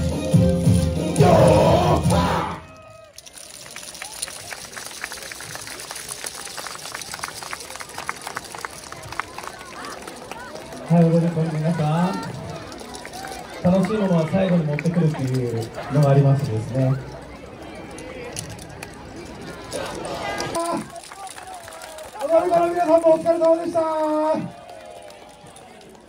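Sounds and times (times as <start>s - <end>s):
dance music: 0.0s - 2.6s
light crowd noise: 0.0s - 26.0s
sharp claps and clacks: 3.2s - 11.8s.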